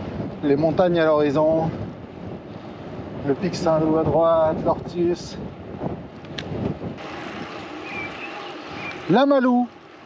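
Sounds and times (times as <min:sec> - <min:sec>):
wind rushing over microphone: 0:00.0 - 0:09.2.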